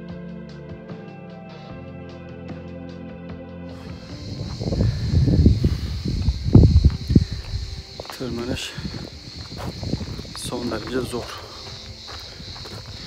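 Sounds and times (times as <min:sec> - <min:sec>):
high insect buzz: 0:03.7 - 0:13.0
microphone rumbling and thumps: 0:03.8 - 0:08.1, 0:08.8 - 0:13.0
man speaking: 0:10.4 - 0:11.7.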